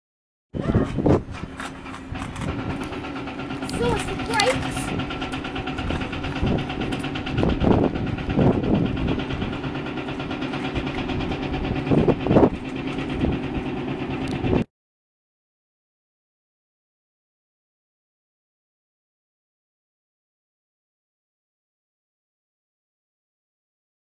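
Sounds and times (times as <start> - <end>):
diesel machinery engine droning: 0.6 - 14.7
voices: 3.6 - 5.0.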